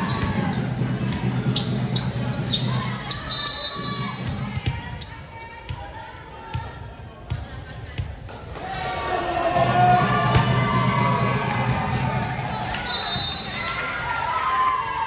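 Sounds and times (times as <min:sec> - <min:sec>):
voices of players and onlookers: 0:00.0 - 0:15.0
volleyball bouncing on gym floor: 0:03.8 - 0:05.0.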